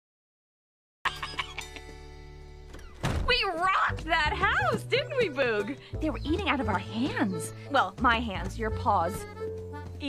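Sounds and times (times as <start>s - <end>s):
soft background music: 1.4s - 10.0s
dull thump: 2.7s - 4.1s.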